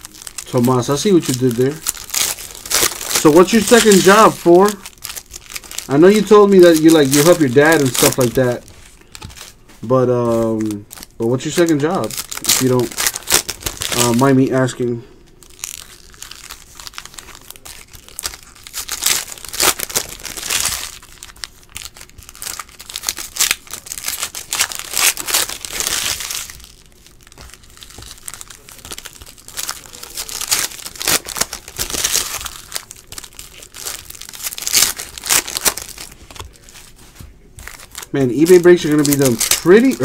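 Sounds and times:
foil wrappers tearing and crinkling: 0.0 - 40.0.

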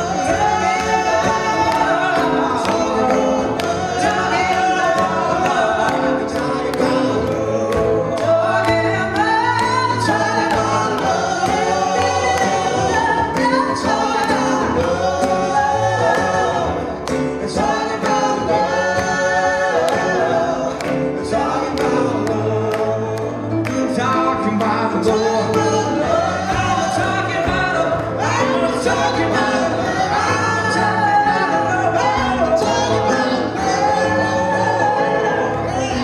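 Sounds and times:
acoustic guitar: 0.0 - 36.0
keyboard: 0.0 - 36.0
vocal group singing in harmony: 0.0 - 36.0.

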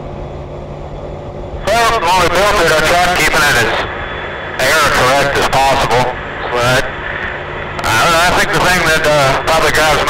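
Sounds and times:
man speaking: 1.6 - 3.9, 4.6 - 7.0, 7.8 - 10.0.

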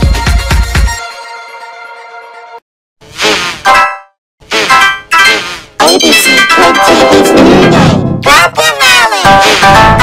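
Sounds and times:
warbling jingle tones: 4.8 - 7.4.

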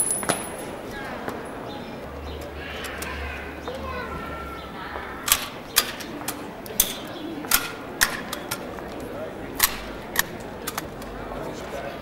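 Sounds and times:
boots on cobblestones: 0.0 - 1.4.

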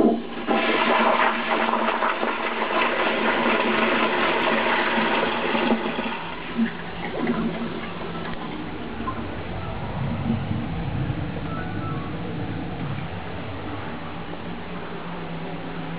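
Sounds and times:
toilet flushing: 0.0 - 9.2.

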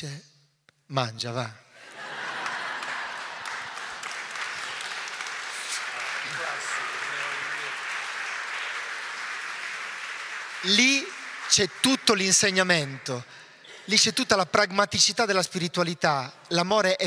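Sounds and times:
audience applauding: 1.8 - 14.2.

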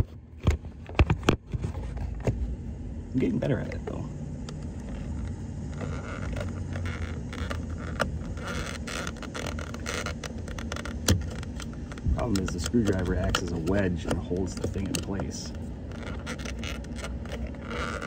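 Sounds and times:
steady low hum: 0.0 - 18.0
screwdriver scraping and clicking: 4.5 - 18.0.

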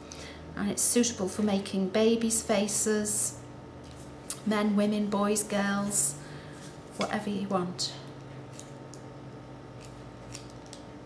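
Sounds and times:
piping bag clicks and rustles: 9.8 - 11.0.

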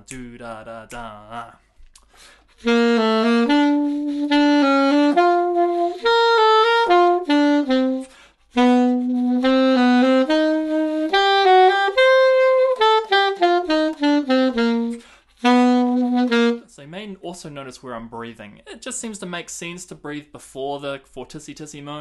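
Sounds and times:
saxophone playing lively melody: 2.6 - 16.7.

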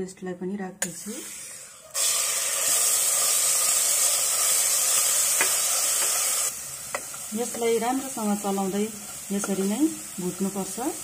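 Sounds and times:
paste sizzling in hot oil: 1.0 - 11.0.

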